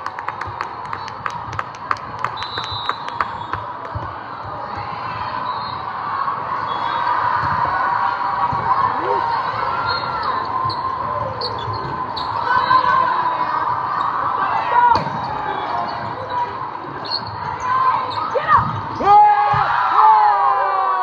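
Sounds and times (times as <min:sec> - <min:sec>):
hubbub of many voices: 0:00.0 - 0:21.0.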